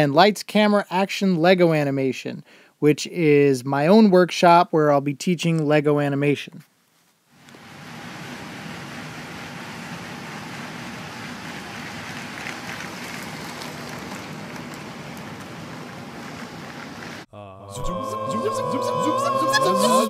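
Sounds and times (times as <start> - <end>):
toy train running on track: 11.2 - 15.4.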